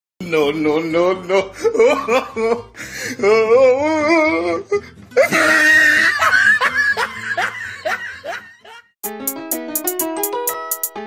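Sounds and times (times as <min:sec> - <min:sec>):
young man laughing: 0:01.3 - 0:03.5, 0:05.2 - 0:08.9.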